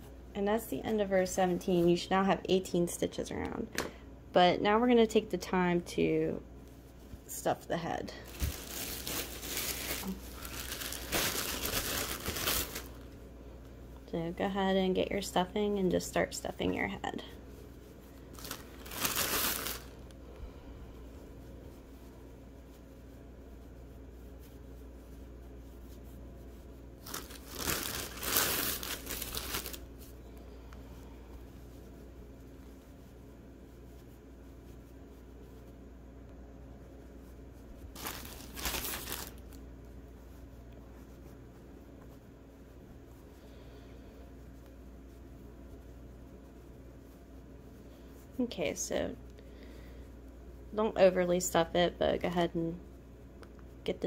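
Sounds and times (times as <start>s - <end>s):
plastic bag crinkling: 8.1s - 13.2s, 18.2s - 20.1s, 27.0s - 30.0s, 37.8s - 39.6s.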